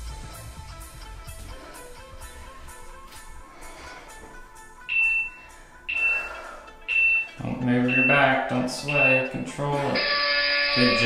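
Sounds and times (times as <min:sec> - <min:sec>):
timer beeps: 0:04.9 - 0:11.0.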